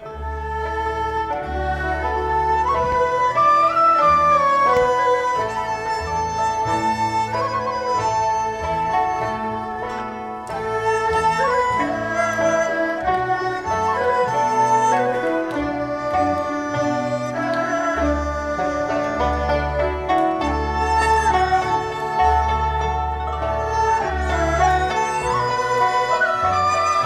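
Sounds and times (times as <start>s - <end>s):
bowed strings: 0.0s - 27.0s
flute melody: 0.0s - 27.0s.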